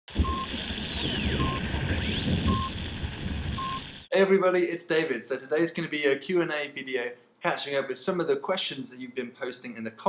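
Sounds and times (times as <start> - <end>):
short electronic beeps: 0.2 - 0.5, 1.2 - 1.6, 2.4 - 2.7, 3.6 - 3.8
sweeping electronic tones: 0.2 - 2.8.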